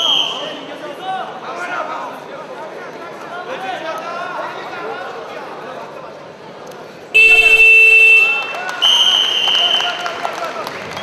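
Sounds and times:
whistle blast: 0.0s - 0.6s, 7.2s - 10.1s
crowd voices: 0.0s - 11.0s
buzzer sounding loudly: 7.2s - 8.5s.

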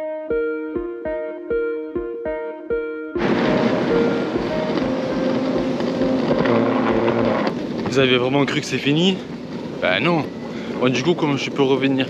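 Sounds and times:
piano music over a beat: 0.0s - 7.7s
street traffic noise: 3.2s - 12.0s.

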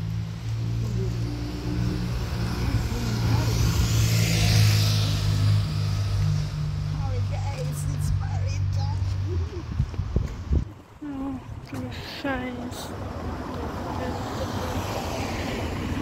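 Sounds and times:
car passing: 0.0s - 16.0s
low engine hum: 0.0s - 16.0s.

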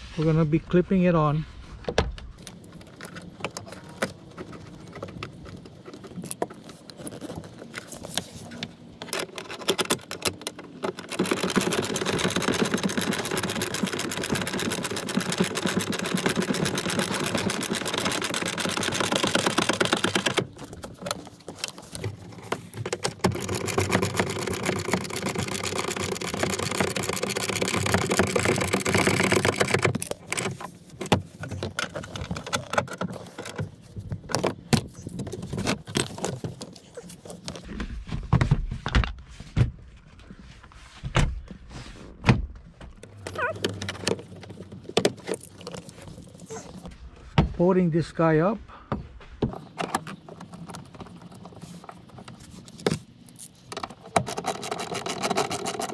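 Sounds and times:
handling noises: 1.4s - 47.6s, 48.9s - 55.9s.

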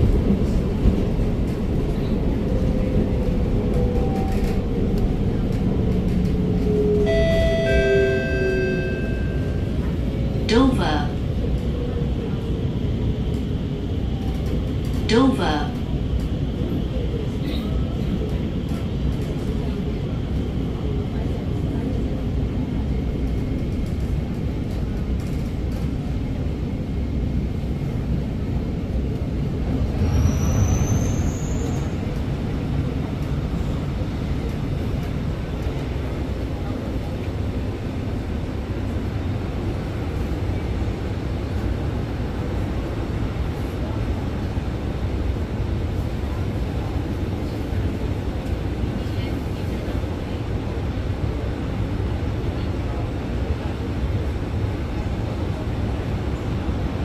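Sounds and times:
metro train low rumble: 0.0s - 57.0s.

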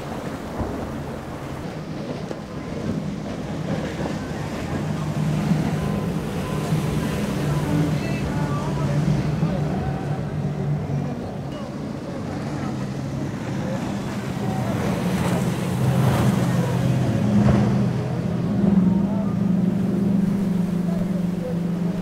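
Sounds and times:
outboard engines droning: 0.0s - 22.0s
water rushing from boat hulls: 0.0s - 22.0s.

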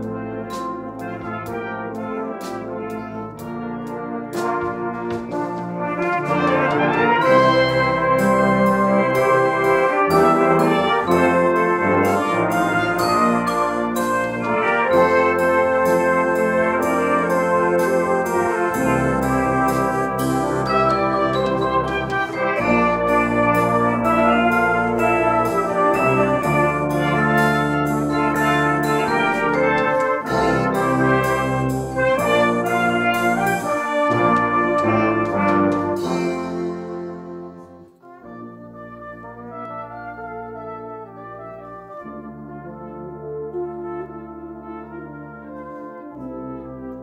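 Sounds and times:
brass band playing loudly: 0.0s - 47.0s
soft slow brass: 0.0s - 47.0s
mallet percussion strikes: 20.2s - 23.2s.

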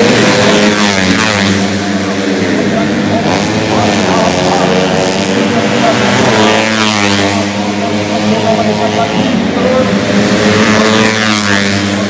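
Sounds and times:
motorcycle engine at high revs passing: 0.0s - 12.0s.

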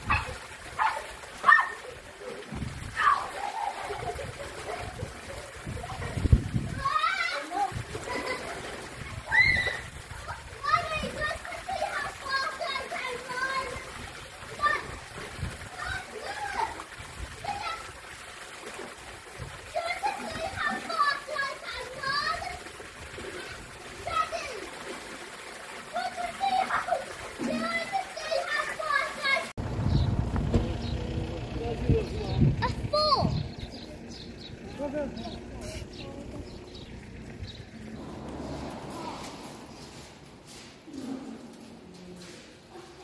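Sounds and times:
children shouting: 0.0s - 15.1s, 15.7s - 16.8s, 19.7s - 22.7s, 25.9s - 29.6s, 32.6s - 33.4s
fountain pouring into pool: 0.0s - 40.9s
water splashing: 0.0s - 43.0s
low rumble: 29.6s - 40.5s.

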